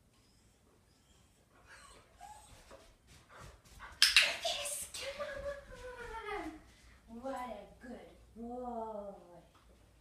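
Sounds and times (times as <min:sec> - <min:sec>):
dog whining: 0:00.2 - 0:02.7.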